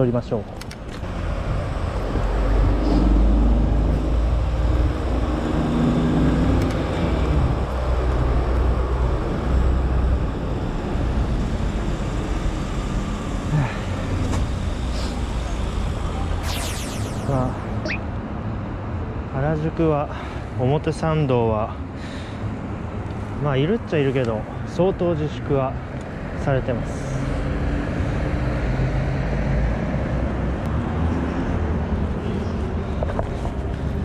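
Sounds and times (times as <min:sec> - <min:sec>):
high-pitched sweeping sounds: 0:16.4 - 0:18.1.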